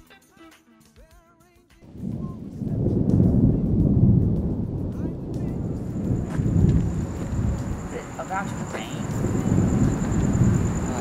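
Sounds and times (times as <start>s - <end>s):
rolling thunder rumble: 1.8s - 11.0s
faint high whine: 5.4s - 11.0s.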